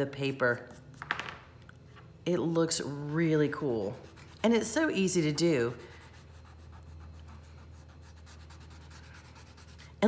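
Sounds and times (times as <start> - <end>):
chalk pastel scratching on paper: 0.1 - 1.1, 3.6 - 10.0.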